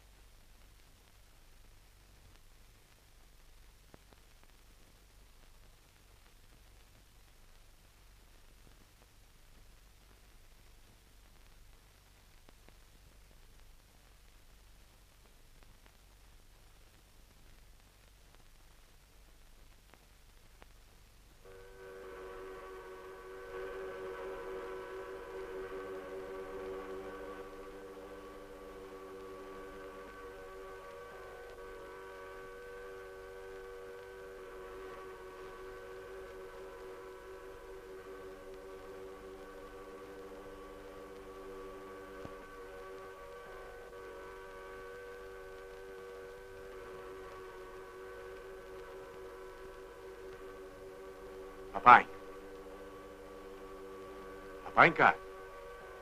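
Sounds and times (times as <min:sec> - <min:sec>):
steam hooters sounding chord: 0:21.5 - 0:56.0.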